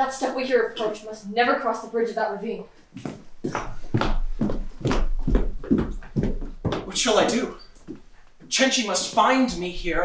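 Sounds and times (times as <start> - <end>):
quick footsteps on stage floor: 2.9 - 9.6.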